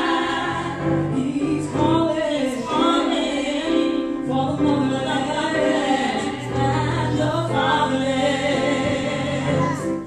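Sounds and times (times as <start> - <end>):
piano accompaniment: 0.0 - 10.0
women singing in harmony: 0.0 - 10.0.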